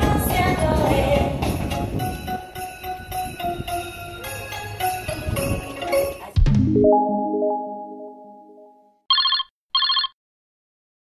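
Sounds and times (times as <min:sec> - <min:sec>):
telephone trilling ring: 0:09.1 - 0:10.2.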